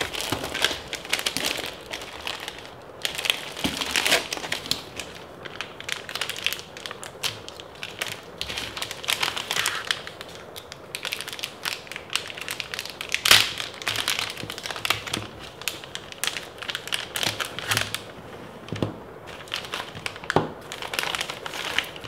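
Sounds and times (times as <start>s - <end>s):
plastic bag crinkling: 0.0s - 22.0s.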